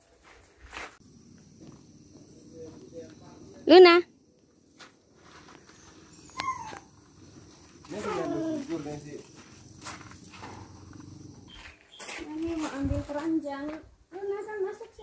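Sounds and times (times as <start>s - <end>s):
voices: 1.7s - 4.7s, 6.4s - 11.5s, 12.1s - 15.0s.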